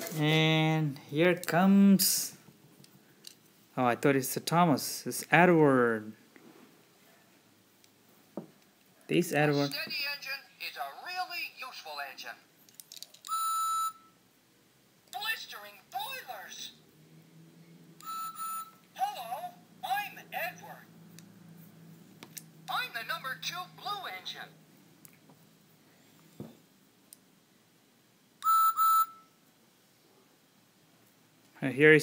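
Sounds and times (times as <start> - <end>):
toy steam whistle toots: 13.3 - 14.1, 18.0 - 18.8, 28.4 - 29.3.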